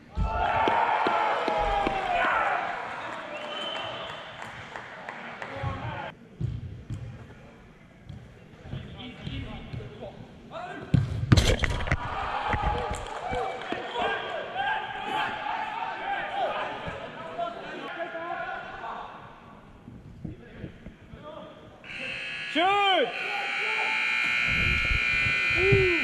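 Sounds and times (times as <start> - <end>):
players shouting: 0.1 - 4.0.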